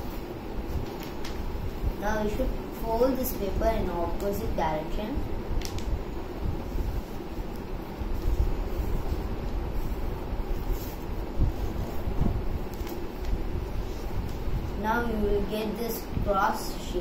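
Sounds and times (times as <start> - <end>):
paper being folded and rubbed: 0.0 - 3.2, 5.6 - 16.0
steady low rumble: 0.0 - 17.0.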